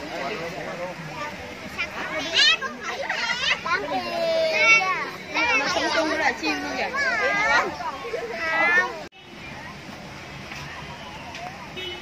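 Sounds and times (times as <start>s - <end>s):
children chattering and calling out: 0.0s - 12.0s.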